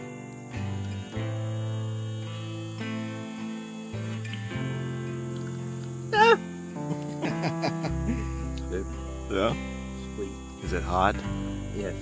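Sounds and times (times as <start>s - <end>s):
acoustic guitar music: 0.0s - 12.0s.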